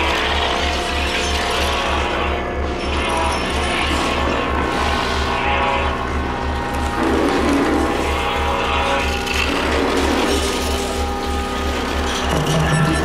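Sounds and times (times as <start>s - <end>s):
grinding ratchet-like noise: 0.0s - 13.0s
held electronic tones: 0.0s - 13.0s
low bass throb: 1.5s - 13.0s.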